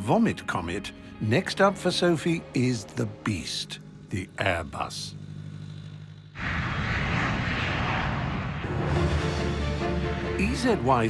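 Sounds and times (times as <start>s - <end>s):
jet engine hum: 1.8s - 11.0s
jet engine rushing noise: 6.4s - 10.3s.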